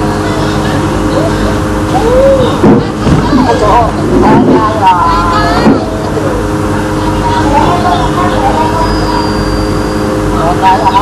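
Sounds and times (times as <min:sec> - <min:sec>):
droning hum: 0:00.0 - 0:11.0
voices talking: 0:00.0 - 0:11.0.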